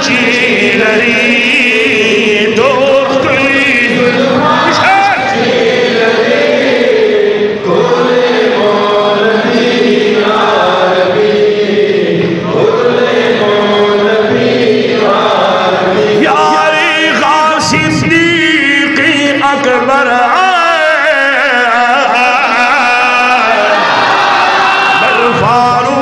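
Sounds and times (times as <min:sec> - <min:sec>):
man chanting devotional verse: 0:00.0 - 0:05.6, 0:15.8 - 0:23.8, 0:25.0 - 0:26.0.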